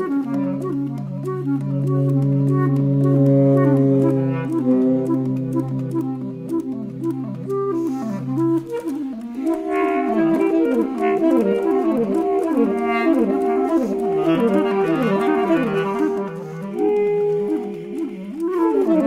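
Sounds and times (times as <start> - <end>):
clarinet: 0.0 - 19.0
saxophone: 0.0 - 19.0.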